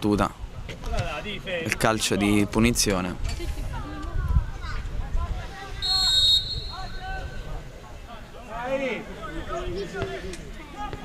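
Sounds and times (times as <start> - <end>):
referee whistle blast: 5.8 - 7.2.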